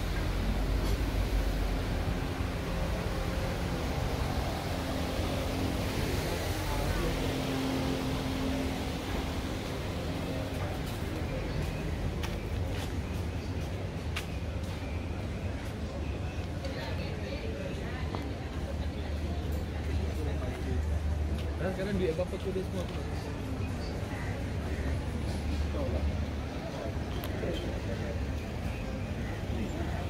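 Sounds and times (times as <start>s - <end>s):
traffic hum: 0.0s - 30.0s.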